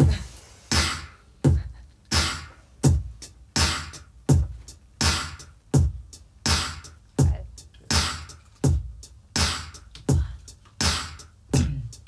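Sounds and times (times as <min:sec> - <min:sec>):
beatboxed clicking hi-hat: 0:00.0 - 0:12.0
beatboxing kick and snare: 0:00.0 - 0:12.0.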